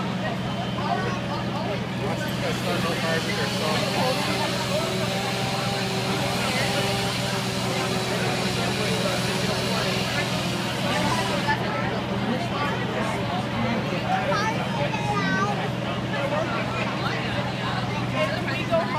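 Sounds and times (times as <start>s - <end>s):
crowd chatter: 0.0s - 18.9s
fire truck engines droning: 0.0s - 18.9s.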